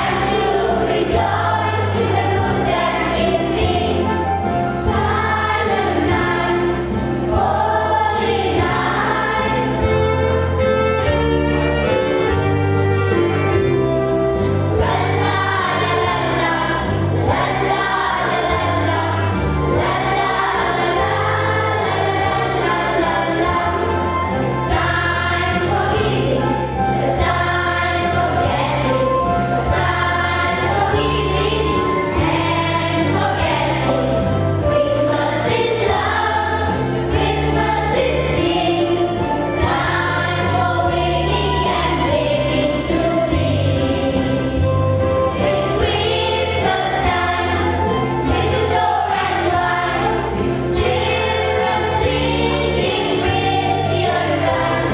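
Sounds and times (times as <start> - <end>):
children's choir singing: 0.0 - 54.9
instrumental accompaniment with bass: 0.0 - 54.9.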